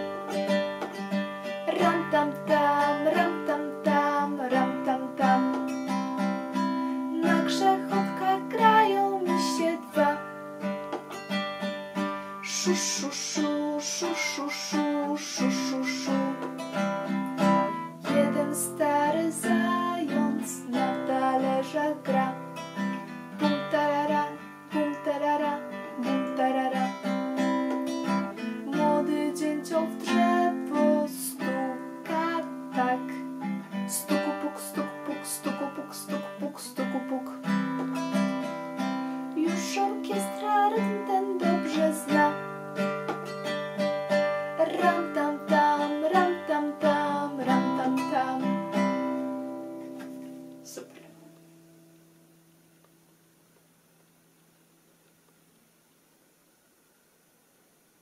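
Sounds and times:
acoustic guitar strumming: 0:00.0 - 0:52.3
woman singing: 0:01.4 - 0:10.4, 0:12.4 - 0:16.7, 0:17.6 - 0:38.0, 0:39.3 - 0:42.6, 0:44.5 - 0:49.2.

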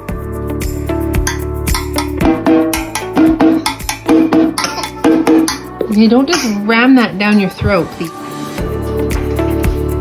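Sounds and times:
percussive music with struck notes: 0:00.6 - 0:06.8.

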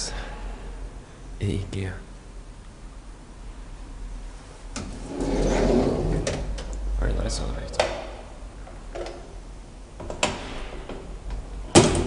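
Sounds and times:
elevator machinery humming: 0:04.7 - 0:06.8
mechanical rumble: 0:04.7 - 0:07.4.

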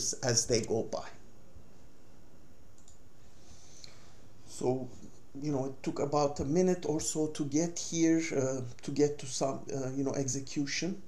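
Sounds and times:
background hiss and hum: 0:00.0 - 0:11.0.

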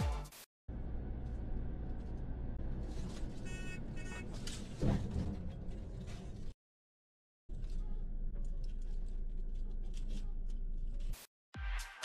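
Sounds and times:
engine and road rumble in cab: 0:00.7 - 0:06.6, 0:07.5 - 0:11.2.

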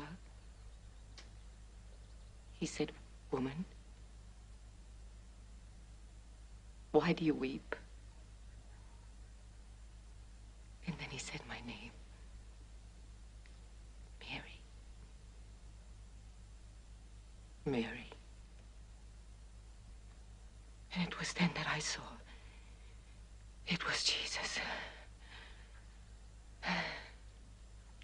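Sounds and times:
low steady hum: 0:00.0 - 0:28.0
woman whispering breathily: 0:23.7 - 0:25.1.

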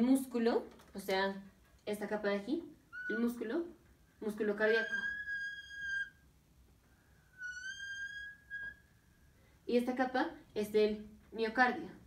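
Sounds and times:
marker squeaking on whiteboard: 0:02.9 - 0:03.6, 0:04.4 - 0:06.3, 0:07.3 - 0:08.9.

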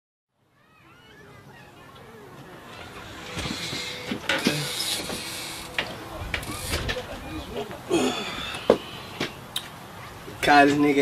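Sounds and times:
outdoor noise rush: 0:00.4 - 0:11.0.

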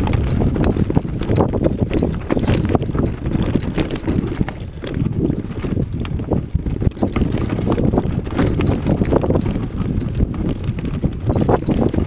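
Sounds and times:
bike clattering over stony trail: 0:00.0 - 0:12.0.

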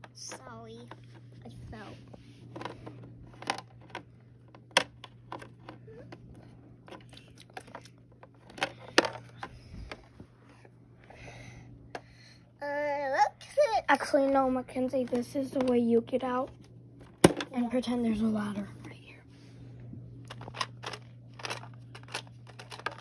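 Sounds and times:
steady low hum: 0:00.0 - 0:23.0
plastic toys clicking and tapping: 0:02.6 - 0:05.8, 0:06.9 - 0:10.0, 0:20.3 - 0:23.0
child vocal sounds: 0:12.6 - 0:14.1.

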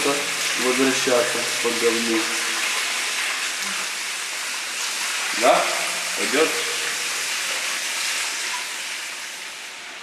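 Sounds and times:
running water hiss: 0:00.0 - 0:10.0.

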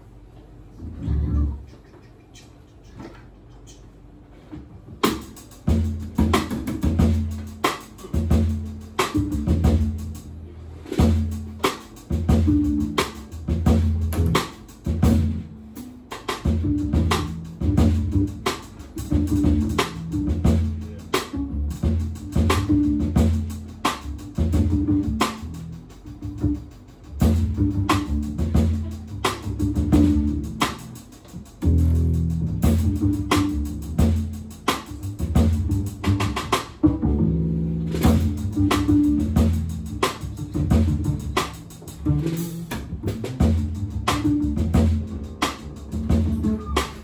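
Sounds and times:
double bass: 0:00.0 - 0:47.0
drum kit: 0:03.4 - 0:47.0.

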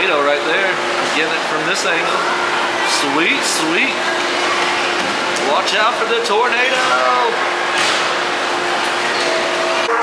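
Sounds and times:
fans blowing air: 0:00.0 - 0:10.0
steady hum: 0:00.0 - 0:10.0.

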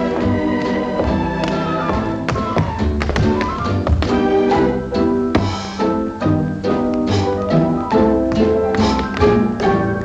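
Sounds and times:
orchestra playing: 0:00.0 - 0:10.0
tap shoes striking floor: 0:00.9 - 0:04.2.

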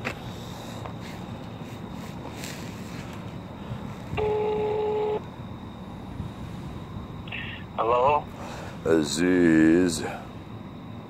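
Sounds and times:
low steady rumble: 0:00.0 - 0:11.0
phone call tone: 0:04.1 - 0:05.3, 0:07.3 - 0:08.3.

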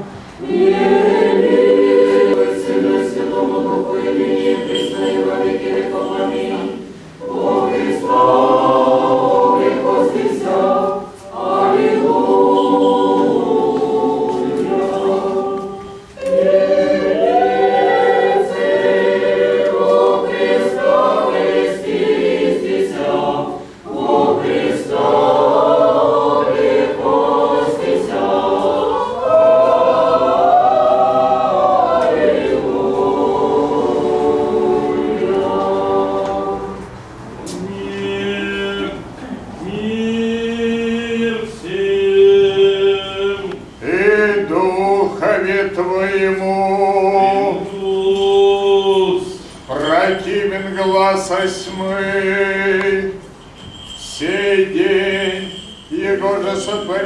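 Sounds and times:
church choir singing a cappella: 0:00.0 - 0:57.0.

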